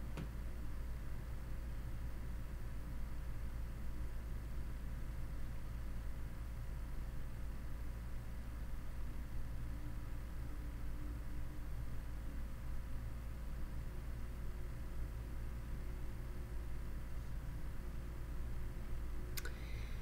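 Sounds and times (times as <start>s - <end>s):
faint hiss: 0.0s - 20.0s
low background hum: 0.0s - 20.0s.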